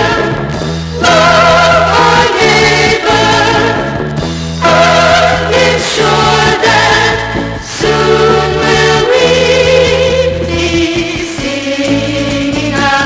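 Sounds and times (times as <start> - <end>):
voices singing in harmony: 0.0 - 4.0, 4.6 - 13.0
instrumental backing with bass line: 0.0 - 13.0.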